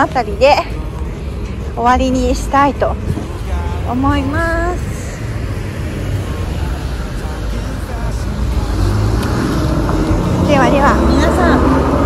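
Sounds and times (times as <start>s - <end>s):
car engine rumbling: 0.0s - 12.0s
traffic noise: 0.0s - 12.0s.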